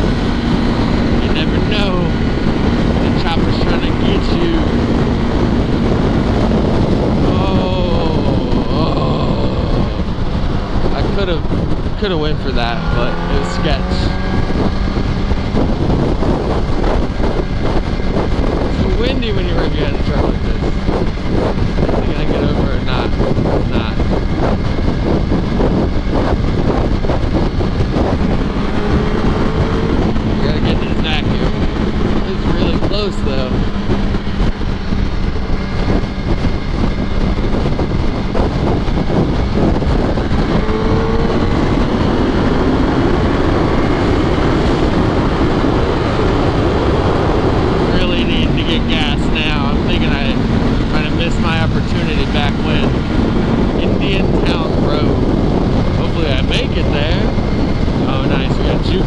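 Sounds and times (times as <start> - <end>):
motorcycle engine revving: 0.0 - 59.0
wind noise on microphone: 0.0 - 59.0.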